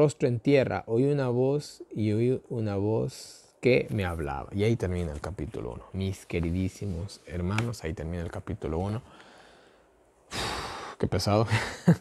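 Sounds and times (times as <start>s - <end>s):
man sighing: 10.3s - 11.0s.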